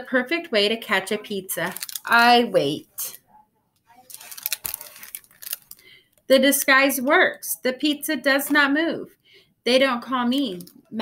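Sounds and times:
paper rustling: 0:04.0 - 0:05.8.

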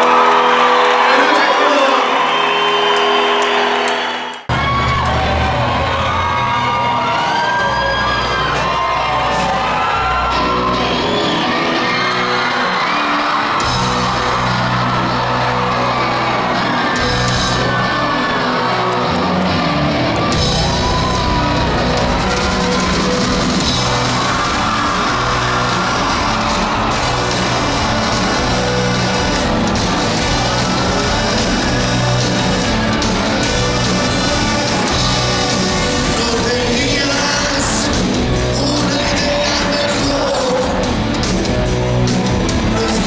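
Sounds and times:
crowd whooping and yelling: 0:00.0 - 0:43.0
live rock band playing: 0:06.2 - 0:43.0.

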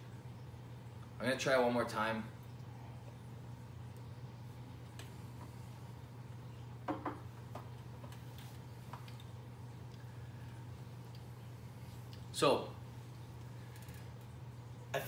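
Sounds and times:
low room hum: 0:00.0 - 0:15.0
glass set down on desk: 0:06.9 - 0:07.3.

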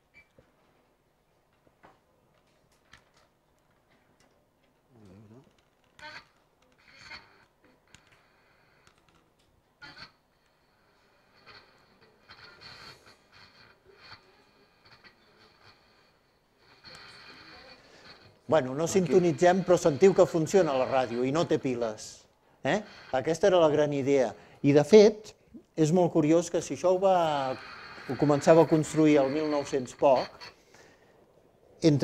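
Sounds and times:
radio crackles and clicks: 0:05.4 - 0:09.2, 0:09.8 - 0:31.0.

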